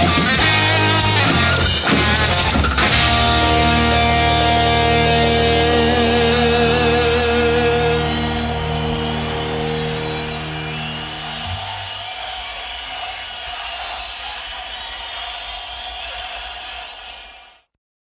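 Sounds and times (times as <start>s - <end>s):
rock band final chord: 0.0s - 12.3s.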